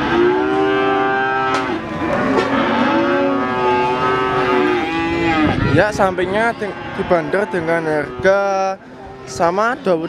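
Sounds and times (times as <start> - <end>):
cattle mooing: 0.0 - 10.0.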